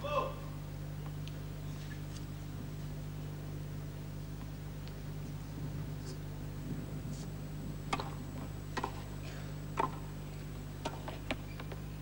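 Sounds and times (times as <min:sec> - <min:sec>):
low broadcast hum: 0:00.0 - 0:12.0
tennis rackets striking ball: 0:07.9 - 0:09.1, 0:09.8 - 0:10.1, 0:10.8 - 0:11.8.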